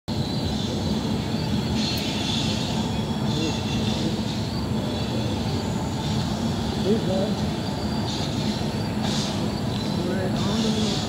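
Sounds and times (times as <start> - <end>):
passenger train rumbling: 0.1 - 11.0.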